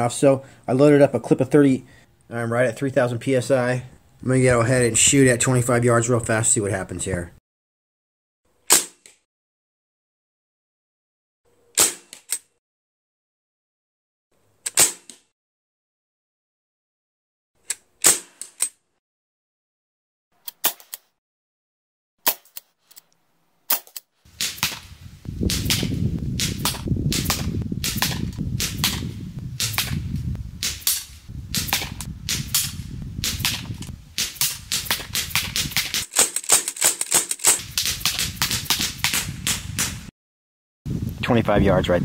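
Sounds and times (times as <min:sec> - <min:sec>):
air rifle shots: 0:11.8 - 0:12.3, 0:24.4 - 0:40.0.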